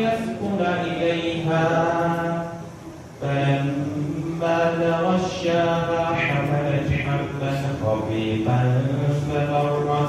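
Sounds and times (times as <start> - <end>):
man reciting melodically: 0.0 - 10.0.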